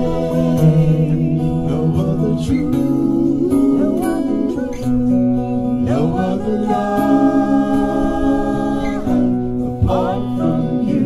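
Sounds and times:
acoustic guitar: 0:00.0 - 0:11.0
people singing: 0:00.0 - 0:11.0.

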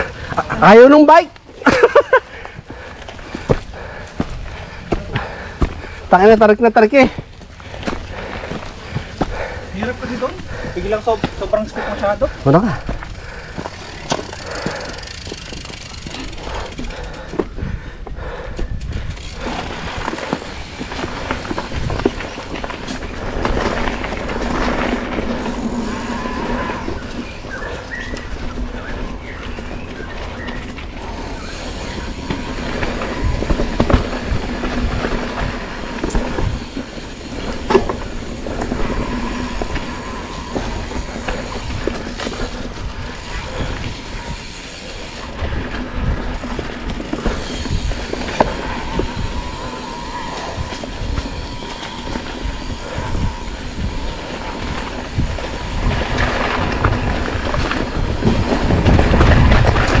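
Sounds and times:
bike rattling over bumps: 0:00.0 - 1:00.0
tyre noise on dirt: 0:00.0 - 1:00.0
faint whine: 0:20.0 - 0:46.2, 0:47.1 - 0:58.1.

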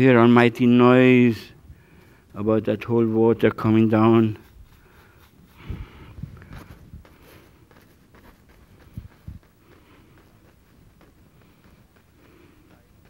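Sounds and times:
brush rustling on palette: 0:01.9 - 0:13.0.

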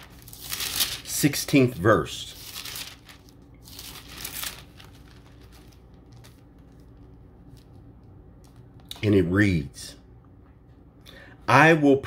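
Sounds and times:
paper pages rustling: 0:00.0 - 0:08.9.

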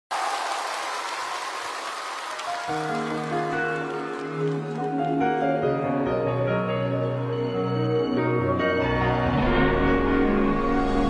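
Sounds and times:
audience applauding: 0:00.1 - 0:05.6.

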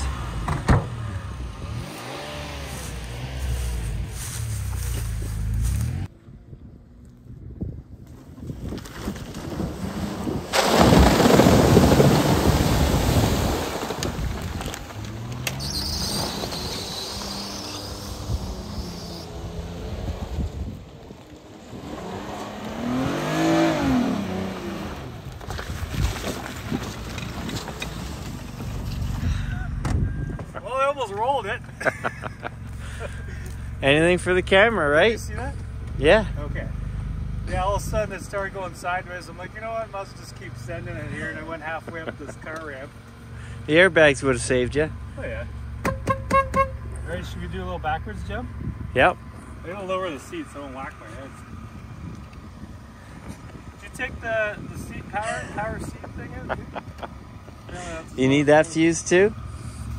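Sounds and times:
engine revving: 0:00.0 - 0:06.1, 0:14.6 - 0:20.8, 0:21.6 - 0:25.3
wheels spinning in mud: 0:08.2 - 0:19.4, 0:20.6 - 0:31.6.

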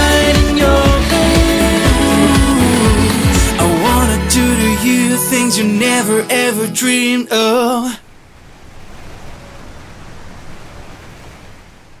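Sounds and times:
steady rushing noise: 0:08.0 - 0:12.0.

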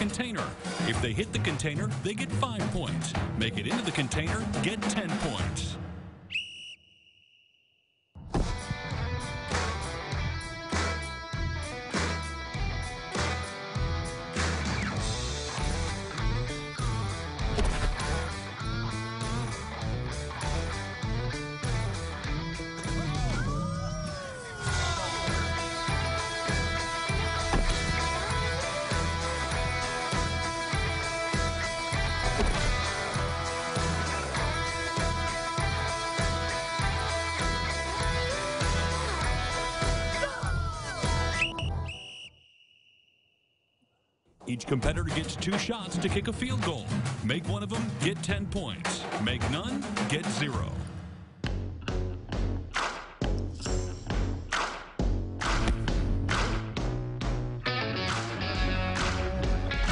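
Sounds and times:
high rising whistle: 0:06.3 - 0:07.8, 0:41.4 - 0:43.4
guitar music with steady beat: 0:08.6 - 0:23.1, 0:24.9 - 0:40.1, 0:57.6 - 0:59.9.

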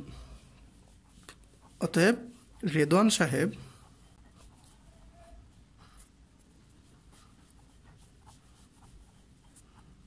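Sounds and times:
pen scratching on paper: 0:00.6 - 0:10.0.

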